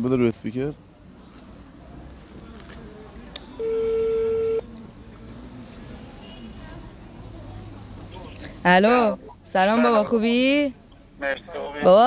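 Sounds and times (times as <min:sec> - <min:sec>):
phone ringback beep: 0:03.6 - 0:04.6.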